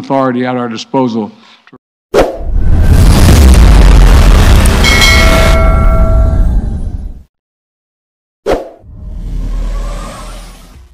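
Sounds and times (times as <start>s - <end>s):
bass-heavy whoosh: 2.4s - 7.2s
chime of ringing tones: 4.8s - 6.4s.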